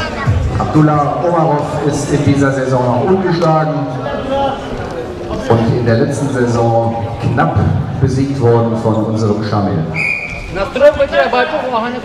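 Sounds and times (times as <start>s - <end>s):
referee's whistle blast: 9.9s - 10.5s.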